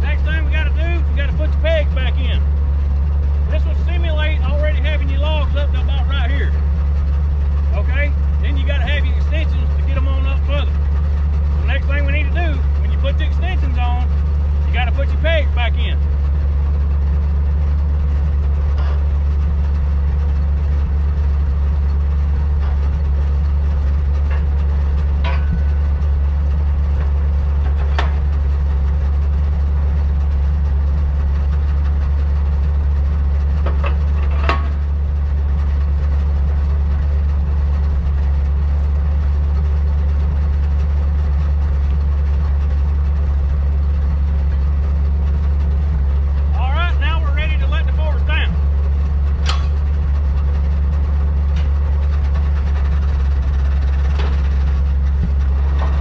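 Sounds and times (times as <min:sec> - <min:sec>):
truck engine idling: 0:00.0 - 0:56.0
sharp metal clanks: 0:24.2 - 0:26.1, 0:49.4 - 0:49.9.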